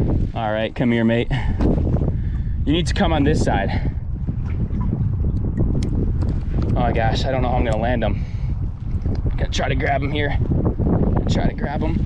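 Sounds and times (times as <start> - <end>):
choppy water: 0.0 - 12.0
wind rumbling on microphone: 0.0 - 12.0.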